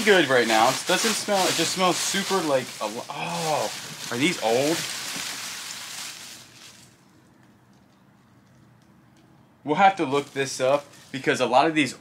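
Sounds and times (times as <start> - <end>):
plastic bag rustling: 0.0 - 7.1, 9.9 - 11.4.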